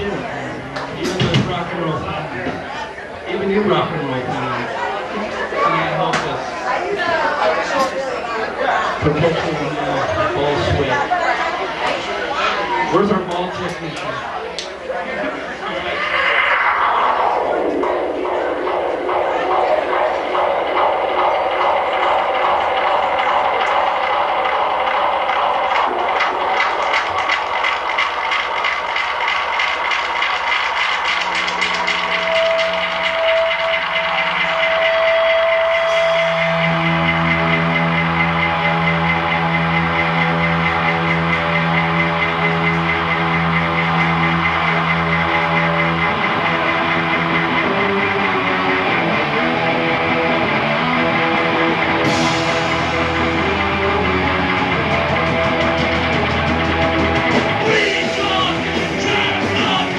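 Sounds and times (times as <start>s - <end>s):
amplified rock guitars: 31.3s - 59.9s.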